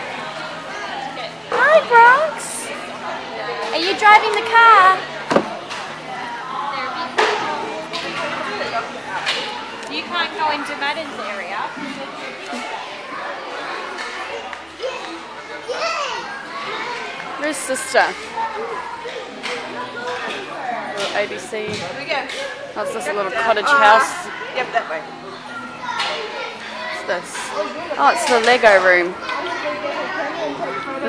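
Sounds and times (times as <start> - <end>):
children playing and chattering: 0.0 - 31.0.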